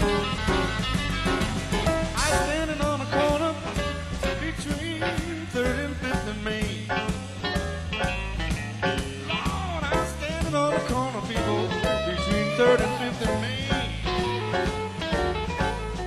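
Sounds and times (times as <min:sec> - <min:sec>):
bass and drums: 0:00.0 - 0:16.0.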